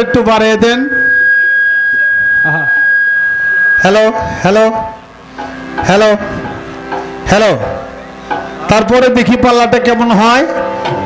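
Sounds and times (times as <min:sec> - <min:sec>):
microphone feedback whistling: 0:00.0 - 0:11.0.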